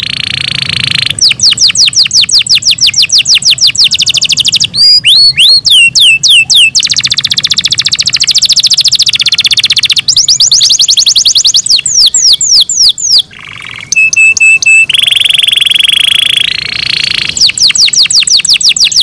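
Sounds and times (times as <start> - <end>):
canary singing trills: 0.0 - 19.0
downward-sweeping bird whistles: 1.2 - 19.0.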